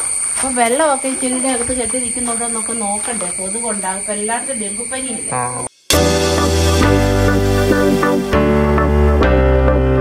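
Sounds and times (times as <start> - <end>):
steady high-pitched hiss: 0.0 - 8.4
woman talking: 0.4 - 5.3.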